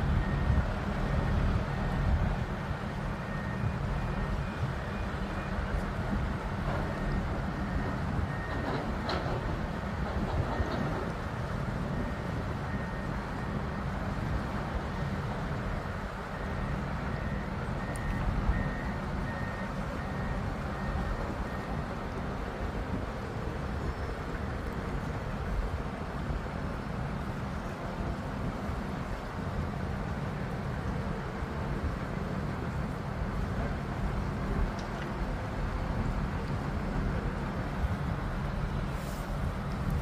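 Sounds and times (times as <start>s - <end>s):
crane engine rumbling: 0.0s - 40.0s.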